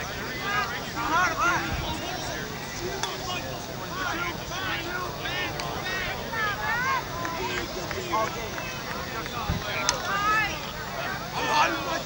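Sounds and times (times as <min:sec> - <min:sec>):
distant people shouting: 0:00.0 - 0:12.0.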